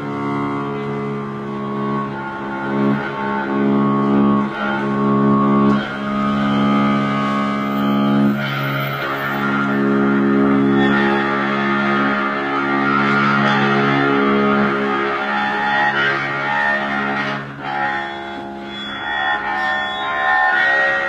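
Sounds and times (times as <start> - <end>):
bowed electric strings drone: 0.0 - 21.0.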